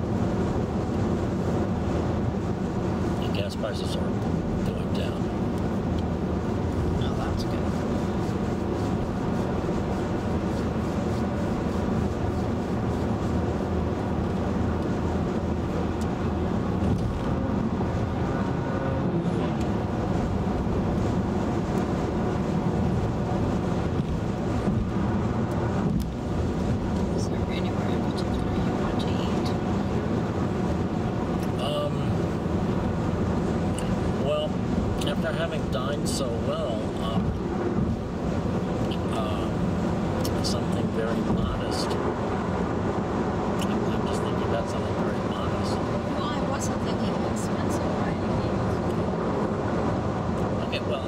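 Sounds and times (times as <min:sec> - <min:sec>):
tyre and road noise in car: 0:00.0 - 0:51.0.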